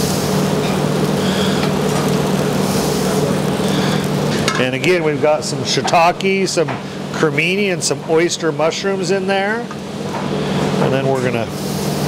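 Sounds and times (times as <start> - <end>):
kitchen equipment hum and hiss: 0.0 - 12.0.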